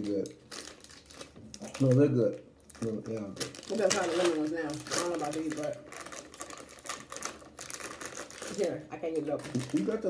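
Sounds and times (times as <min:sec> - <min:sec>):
plastic snack bag crinkling: 0:00.0 - 0:10.0.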